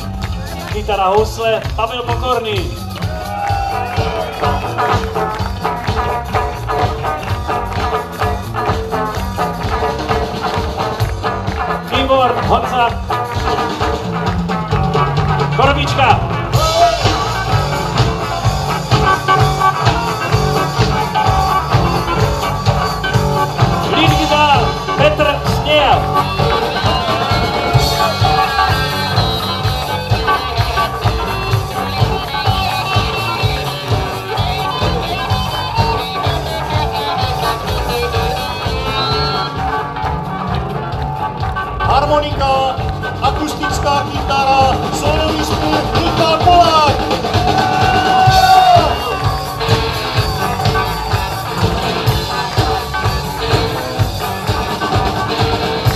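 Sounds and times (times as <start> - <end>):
electric guitar lead line: 0.0 - 55.9
keyboard solo: 0.0 - 55.9
rock band bass and drums: 0.0 - 55.9.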